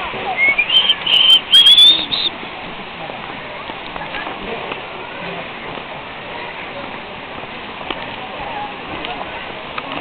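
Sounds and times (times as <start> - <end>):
high whistled notes: 0.3 - 2.3.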